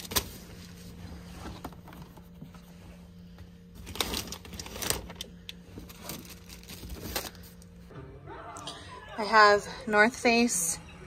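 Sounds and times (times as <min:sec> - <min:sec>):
steady low hum: 0:00.0 - 0:09.1.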